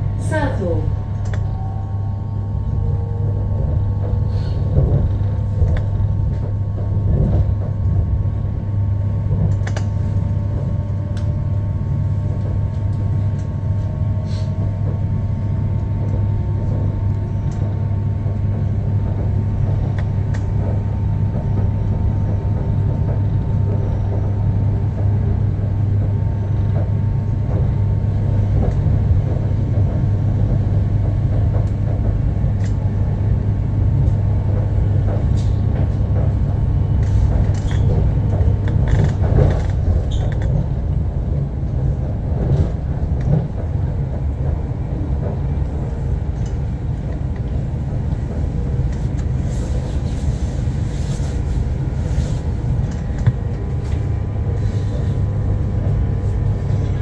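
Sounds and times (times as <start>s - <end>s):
train cabin rumble and hum: 0.0s - 57.0s.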